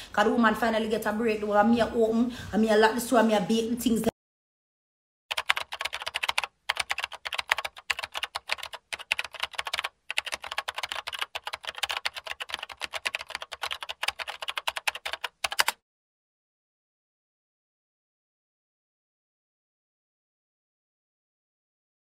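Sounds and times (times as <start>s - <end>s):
fast typing on keyboard: 5.3s - 15.8s.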